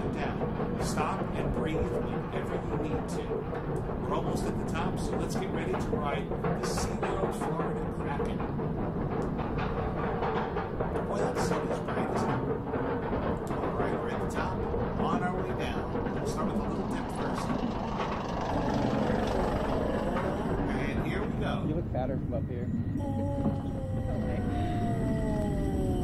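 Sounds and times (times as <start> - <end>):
roller coaster clicks: 0.0 - 22.0, 22.6 - 26.0
roller coaster lift hill clatter: 0.0 - 26.0.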